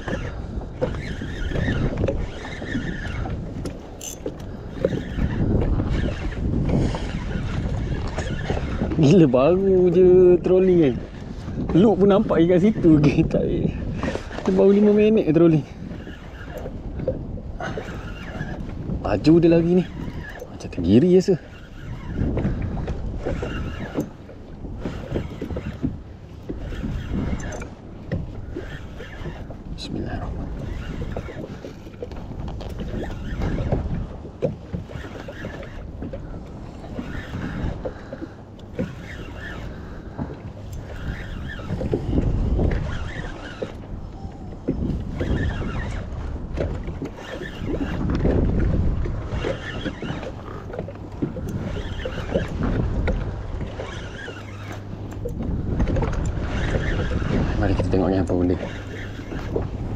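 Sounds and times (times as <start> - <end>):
water slapping kayak hull: 0.0 - 59.9
wind buffeting microphone: 0.0 - 59.9.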